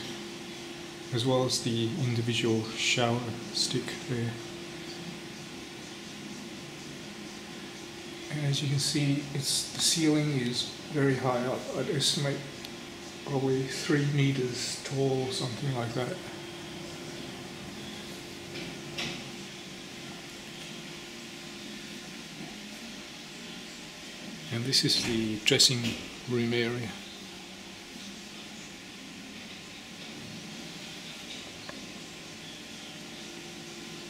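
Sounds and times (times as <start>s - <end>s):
faint even hum: 0.0s - 34.0s
room ventilation hiss: 0.0s - 34.0s.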